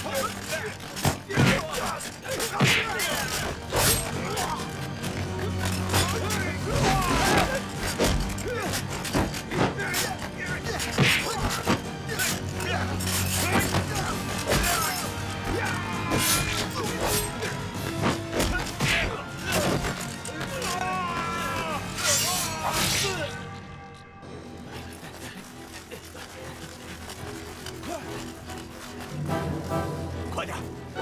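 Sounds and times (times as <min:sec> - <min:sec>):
background music with low drone: 0:00.0 - 0:31.0
shouts and grunts: 0:06.0 - 0:07.7, 0:09.4 - 0:17.6, 0:18.4 - 0:23.4.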